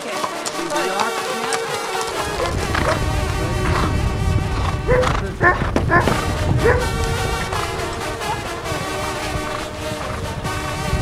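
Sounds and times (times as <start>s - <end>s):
background music: 0.0s - 11.0s
hounds yelping: 0.7s - 3.0s, 4.8s - 8.8s.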